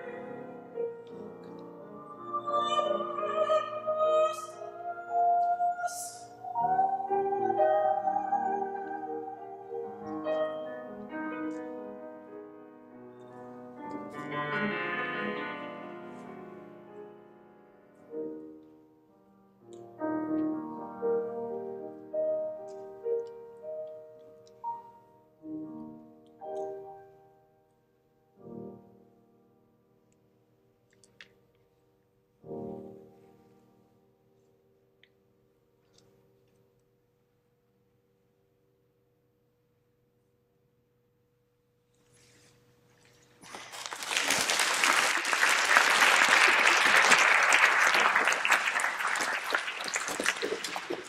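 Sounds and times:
slow soft piano: 0.0s - 38.6s
audience applauding: 43.4s - 51.0s.

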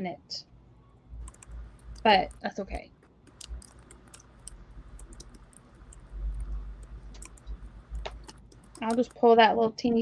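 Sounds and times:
low steady hum: 0.0s - 10.0s
small clicks and handling noise: 1.2s - 9.1s.

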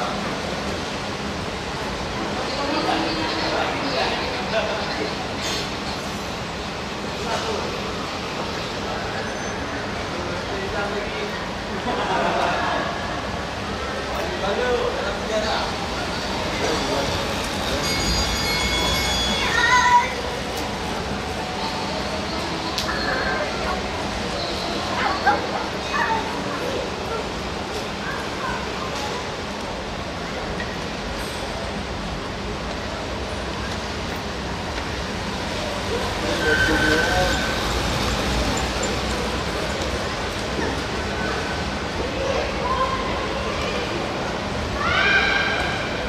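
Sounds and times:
indoor hall noise: 0.0s - 46.0s.

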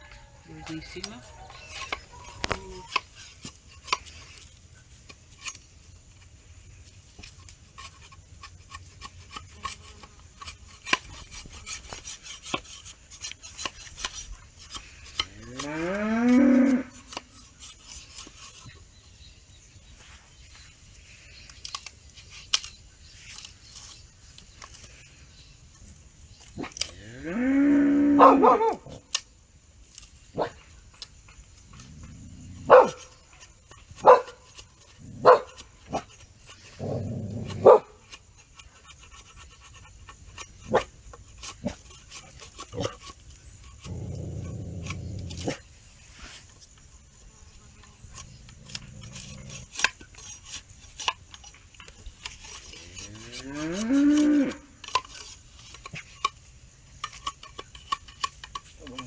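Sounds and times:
cow mooing: 15.3s - 17.0s, 27.0s - 28.4s, 53.0s - 54.7s.

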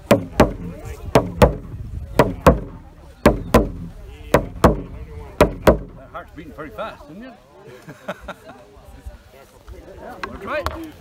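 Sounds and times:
frame drum deep beats: 0.0s - 6.5s.

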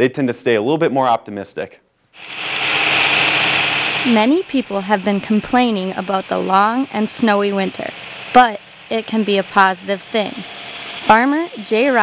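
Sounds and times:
tractor snowblower rushing: 2.2s - 12.0s.

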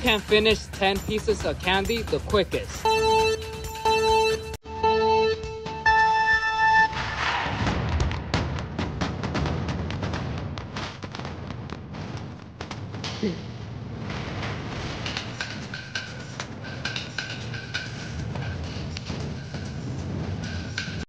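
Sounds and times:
countdown timer beeps: 0.0s - 7.1s.

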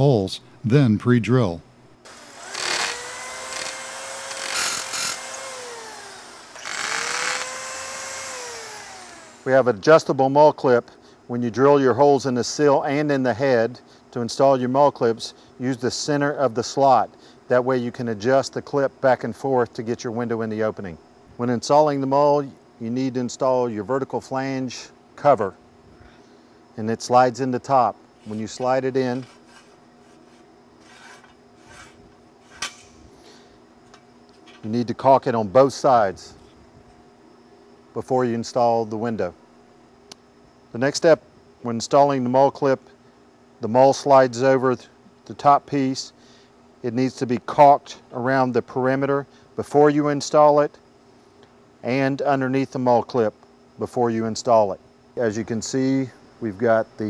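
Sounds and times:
electric drill whining: 2.0s - 9.7s
drill bit grinding: 2.1s - 9.6s.

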